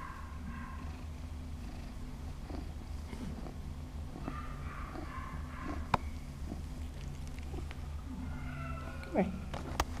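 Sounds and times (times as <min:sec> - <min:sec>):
cat purring: 0:00.0 - 0:08.0.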